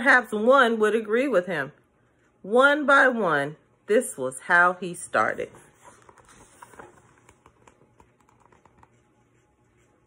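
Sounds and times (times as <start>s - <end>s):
paper pages turning: 5.5s - 10.0s.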